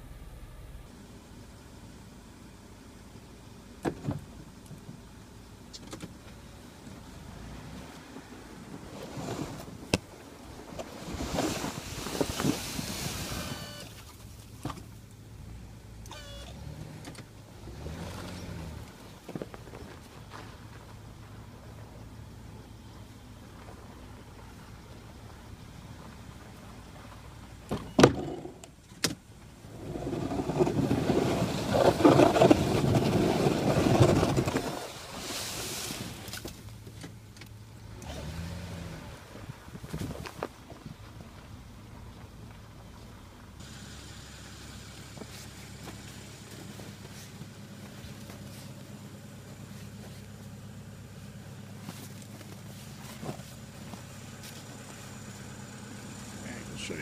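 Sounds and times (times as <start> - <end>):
quiet engine hum: 0.0 - 57.0
snow plow rushing noise: 7.0 - 14.6, 29.6 - 36.7, 43.6 - 57.0.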